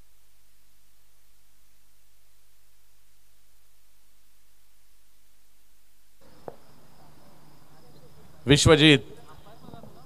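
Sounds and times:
crickets trilling: 6.2 - 10.0.

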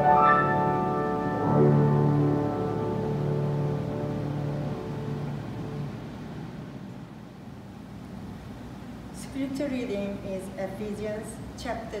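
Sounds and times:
keyboard accompaniment: 0.0 - 7.2
low room hum: 0.0 - 12.0.

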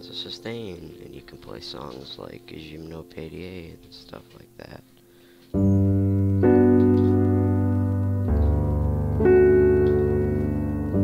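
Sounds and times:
piano chords: 0.0 - 4.9, 5.5 - 11.0.

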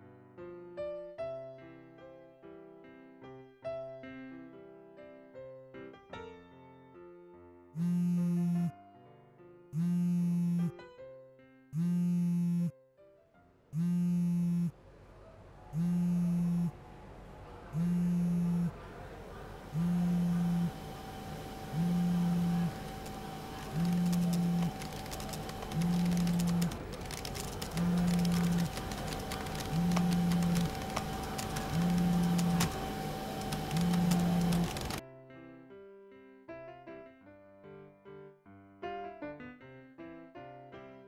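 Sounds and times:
phone vibrating buzzes: 7.8 - 8.7, 9.8 - 10.8, 11.8 - 12.7, 13.8 - 14.7, 15.8 - 16.7, 17.8 - 18.8, 19.7 - 35.0.

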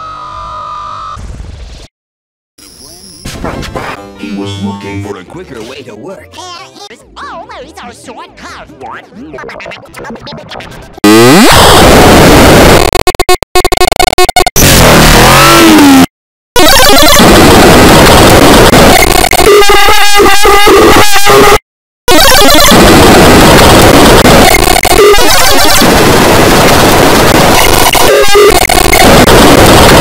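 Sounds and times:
harsh distorted noise: 10.0 - 30.0.

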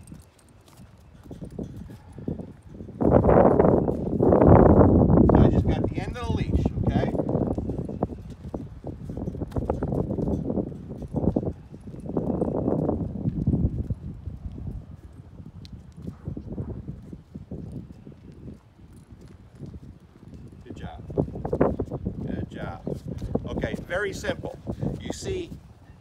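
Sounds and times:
wind rumbling on microphone: 0.0 - 26.0.

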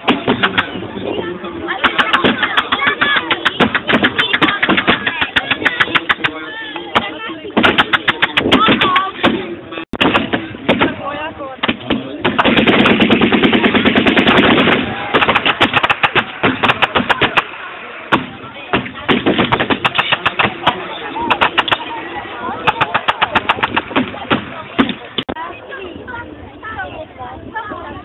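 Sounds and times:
machine-gun fire: 10.0 - 11.0, 11.6 - 21.8, 22.7 - 25.1
rifle shots: 11.6 - 21.8.

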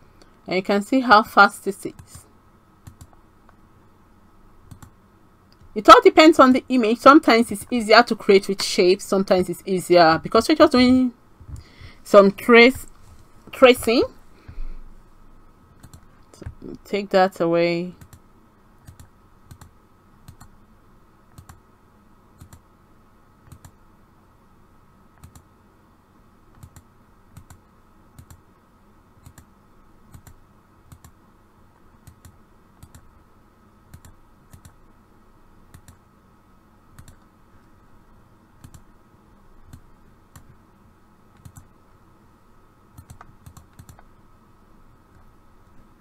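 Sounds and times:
faint steady hum: 0.0 - 46.0
computer mouse clicking: 2.8 - 3.6, 4.6 - 5.7, 15.8 - 16.6, 18.0 - 18.2, 18.8 - 20.5, 21.3 - 21.6, 22.4 - 22.6, 23.4 - 23.8, 25.2 - 25.5, 26.5 - 27.6, 28.2 - 28.4, 29.2 - 29.5, 30.1 - 31.2, 32.0 - 33.1, 33.9 - 34.8, 35.7 - 36.0, 36.9 - 37.3, 38.6 - 38.9, 39.7 - 40.6, 41.3 - 41.7, 42.9 - 44.1.

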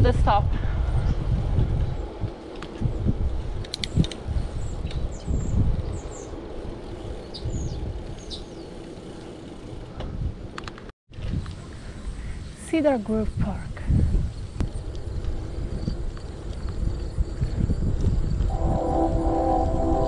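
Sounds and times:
bicycle road rumble: 0.0 - 20.0
wind noise on microphone: 0.0 - 20.0.

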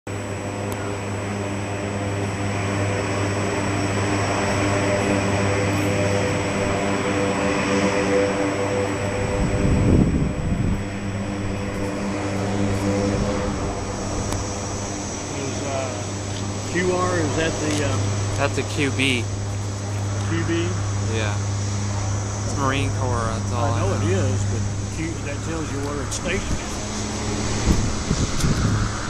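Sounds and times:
turboprop engines running: 0.1 - 29.0.

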